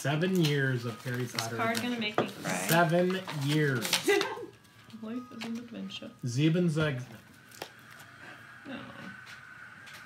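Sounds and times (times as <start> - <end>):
faint steady high hum: 0.0 - 10.0.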